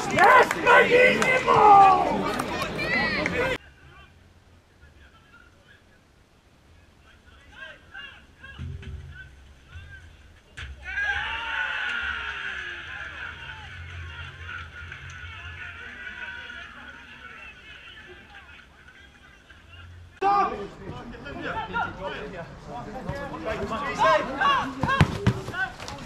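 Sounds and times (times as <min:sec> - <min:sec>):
crowd cheering and shouting: 0:00.0 - 0:03.6, 0:10.8 - 0:18.4
players shouting on pitch: 0:00.0 - 0:03.6, 0:10.8 - 0:18.4, 0:20.2 - 0:20.8.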